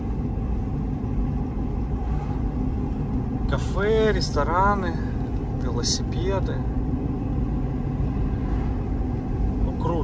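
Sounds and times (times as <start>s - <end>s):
car driving heard from inside: 0.0s - 10.0s.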